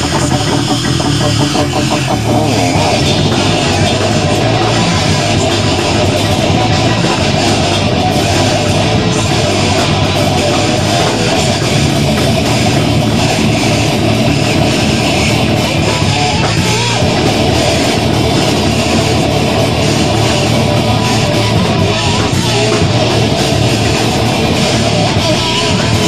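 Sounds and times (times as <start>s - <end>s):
bass guitar: 0.0s - 26.0s
drums: 0.0s - 26.0s
electric guitar: 0.0s - 26.0s.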